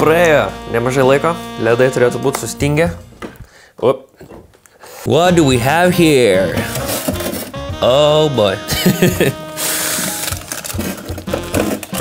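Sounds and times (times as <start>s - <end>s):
plastic tub scraping in freezer drawer: 5.9s - 7.6s, 9.8s - 12.0s.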